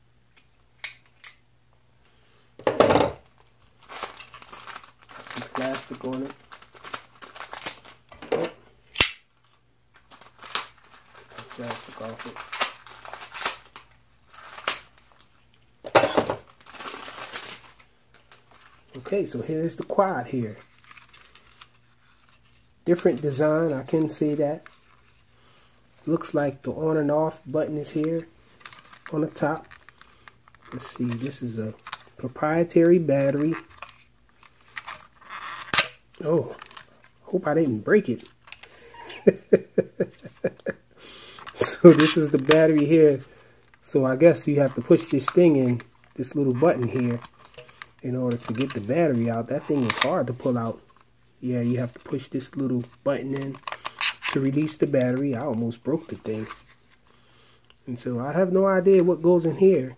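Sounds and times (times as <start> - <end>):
sharp plastic snap: 8.9 - 9.3.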